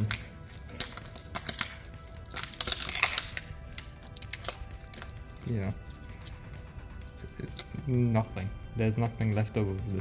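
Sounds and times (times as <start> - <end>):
glass pieces snapping and crunching: 0.0 - 5.4
quiet background music: 0.0 - 10.0.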